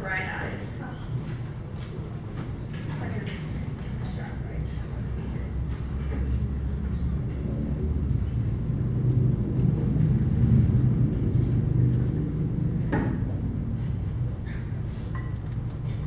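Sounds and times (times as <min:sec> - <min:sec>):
faint audience murmur: 0:00.0 - 0:16.0
low rumbling room noise: 0:00.0 - 0:16.0.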